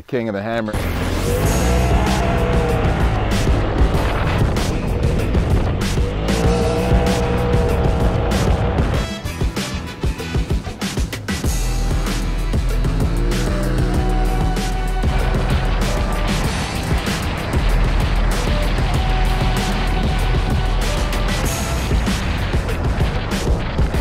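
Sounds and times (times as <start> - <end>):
background music: 0.0 - 24.0
vehicle engine revving: 0.8 - 9.1, 11.5 - 23.7.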